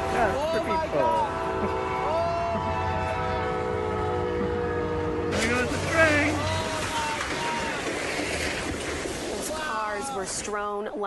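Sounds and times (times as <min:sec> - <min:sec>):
train air horn chord: 0:00.0 - 0:06.6.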